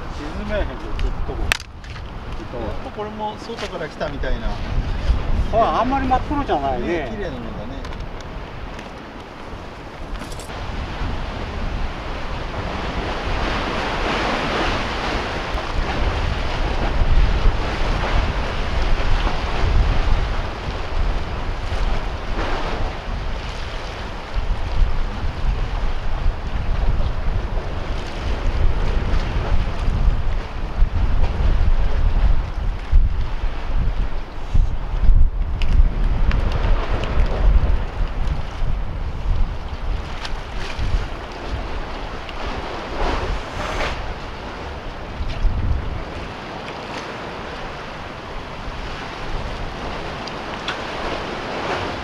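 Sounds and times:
waves washing against concrete: 0.0s - 52.0s
wind buffeting microphone: 0.0s - 52.0s.

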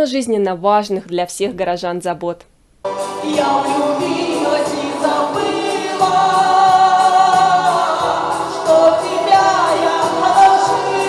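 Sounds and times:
instrumental accompaniment with beat: 2.8s - 11.0s
woman singing into a microphone: 3.2s - 11.0s.

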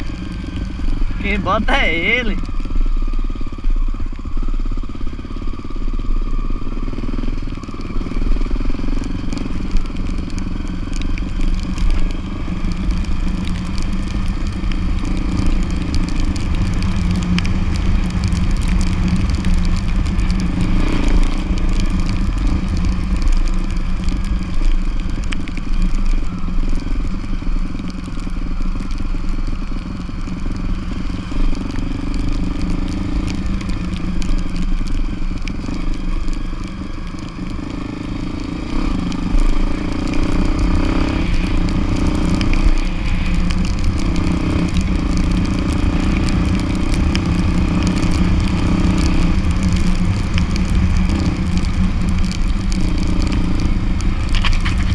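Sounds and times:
tyres crunching over gravel: 0.0s - 2.9s, 7.1s - 54.9s
motorcycle engine running: 0.0s - 54.9s
small rattles and clicks: 0.0s - 54.9s.

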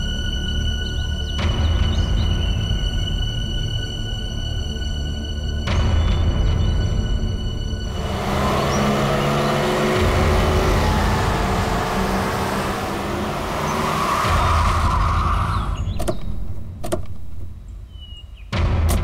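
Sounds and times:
car engine running: 7.8s - 17.6s
car doors clicking open: 15.9s - 17.5s.

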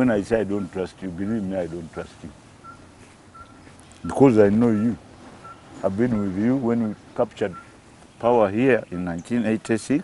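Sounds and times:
faint outdoor background noise: 0.0s - 10.0s
bird whistling: 2.6s - 3.8s, 4.7s - 6.4s, 7.4s - 7.8s.

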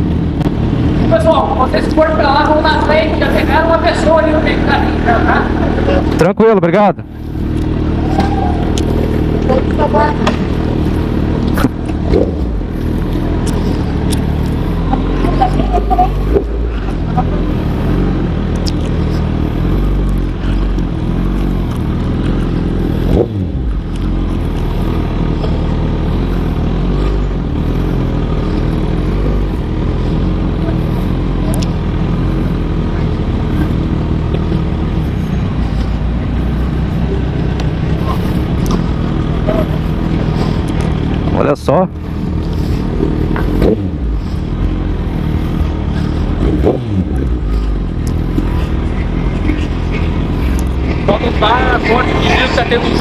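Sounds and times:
motorcycle engine running: 0.0s - 53.0s.

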